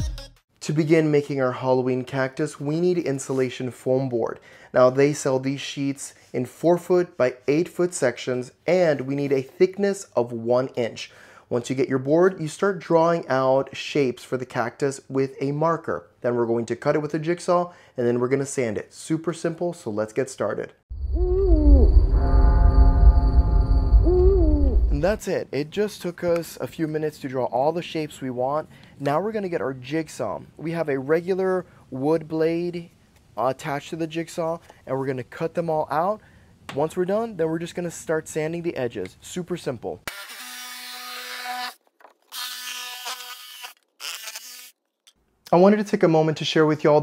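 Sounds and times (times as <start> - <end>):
deep drone: 20.9 - 25.2
steady high tone: 20.9 - 25.2
ghostly gliding voice-like tone: 21.0 - 25.2.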